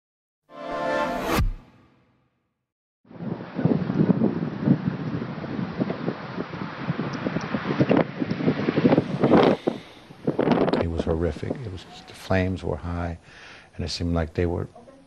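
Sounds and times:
wind buffeting microphone: 3.1 - 11.9
vehicle road noise: 7.3 - 10.8.

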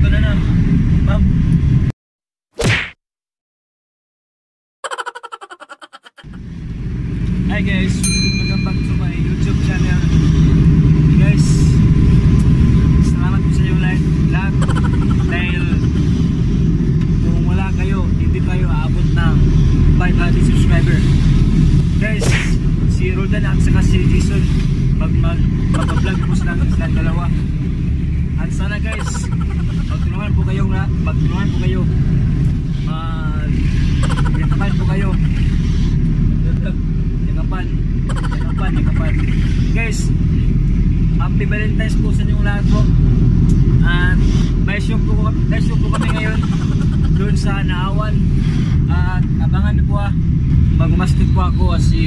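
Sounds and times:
vehicle engine and road rumble: 0.0 - 2.0, 4.8 - 52.0
voices talking: 7.4 - 21.3, 21.9 - 48.3, 48.9 - 52.0.

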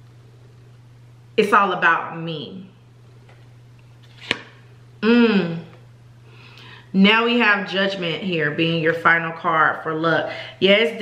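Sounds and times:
low electrical hum: 0.0 - 11.0
card snapping: 4.0 - 4.6.

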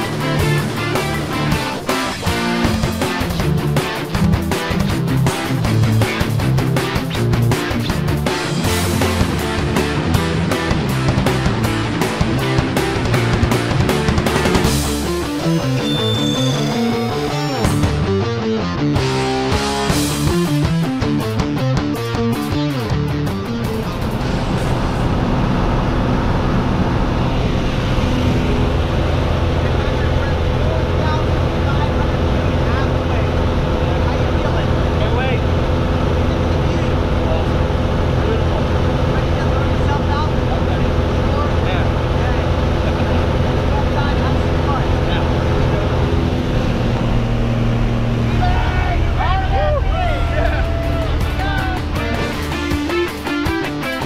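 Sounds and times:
propeller plane engine drone: 0.0 - 21.3, 21.9 - 54.0
rock guitar music: 0.0 - 54.0
raised voices: 48.1 - 52.7.

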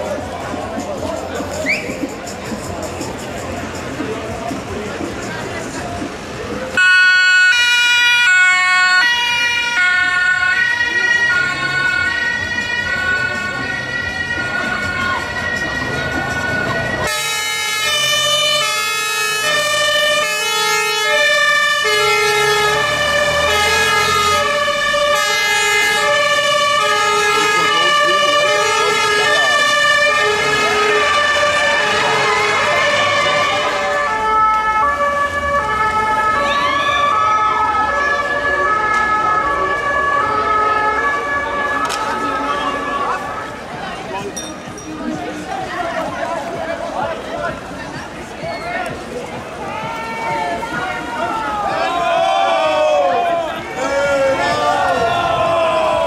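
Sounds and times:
two-tone sirens of fire engines: 6.1 - 44.3, 45.4 - 56.0
quicker two-tone siren: 6.8 - 16.2, 17.0 - 43.3.

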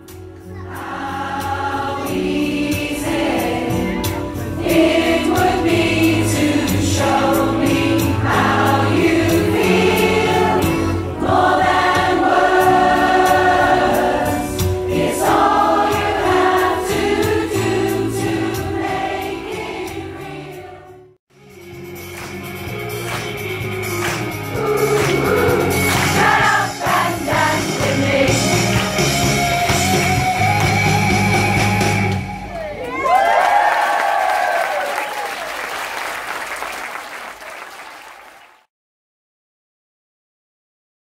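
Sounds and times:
choir singing in harmony: 0.6 - 21.2, 24.4 - 29.9.

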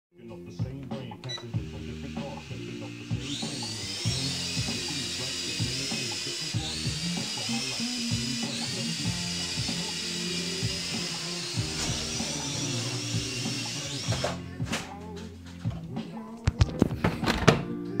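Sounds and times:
music with steady beat: 0.2 - 18.0
toy drone motors whining: 1.4 - 14.4.

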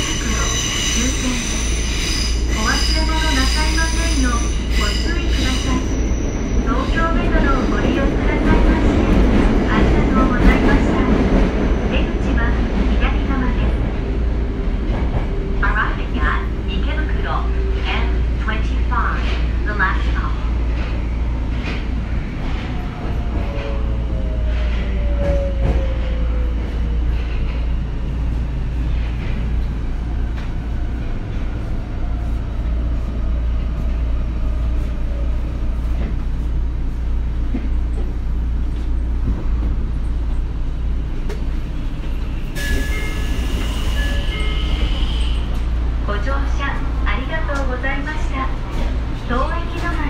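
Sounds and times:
train low hum: 0.0 - 50.0.

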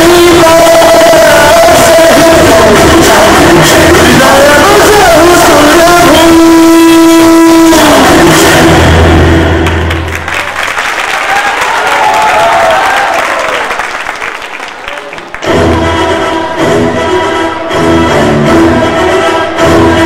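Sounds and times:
music: 0.0 - 10.3, 15.3 - 20.0
audience applauding: 9.6 - 15.8
voices shouting over clapping: 11.1 - 13.8.

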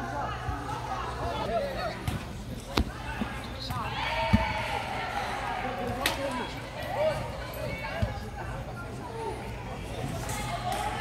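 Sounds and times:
football kicked thuds: 2.7 - 4.6.

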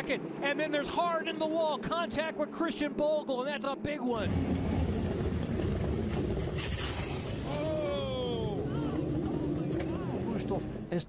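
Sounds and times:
race car engines: 0.0 - 11.0
race car passing by: 4.2 - 11.0.

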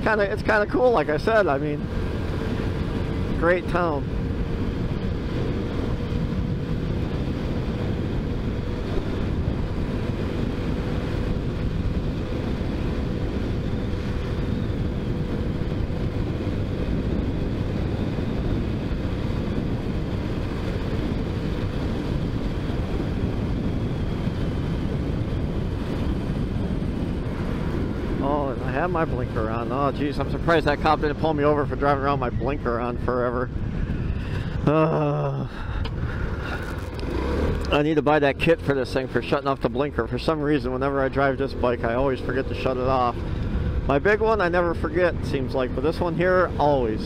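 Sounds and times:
motorcycle engine cruising: 0.0 - 47.0
road noise: 0.0 - 47.0
rush of wind: 0.0 - 47.0.

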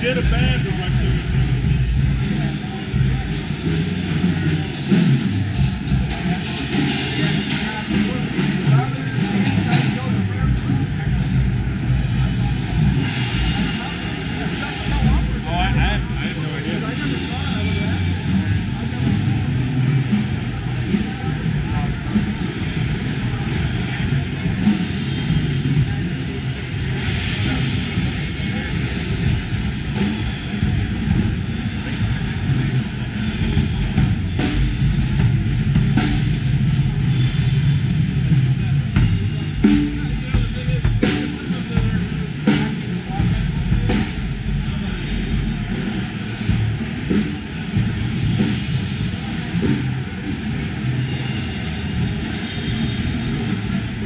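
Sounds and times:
crowd chatter: 0.0 - 54.0
many drums and cymbals: 0.0 - 54.0.

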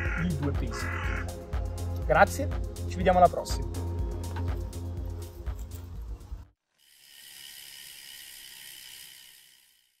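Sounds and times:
background music: 0.0 - 6.5.

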